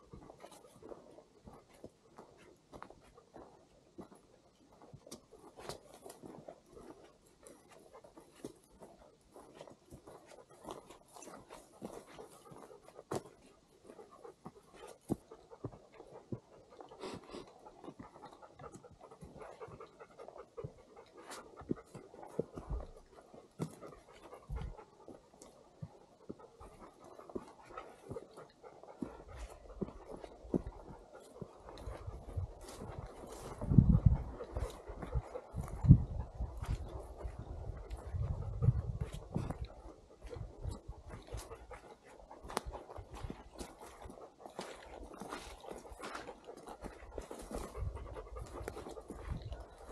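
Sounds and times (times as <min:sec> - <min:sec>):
footsteps: 0:04.9 - 0:49.9
person panting: 0:16.5 - 0:18.7
wind rumbling on microphone: 0:31.6 - 0:41.8, 0:47.4 - 0:49.9.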